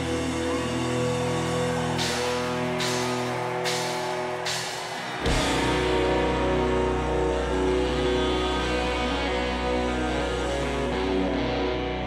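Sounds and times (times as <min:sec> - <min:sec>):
electric guitar chords: 0:00.0 - 0:12.0
low bass drone: 0:00.0 - 0:12.0.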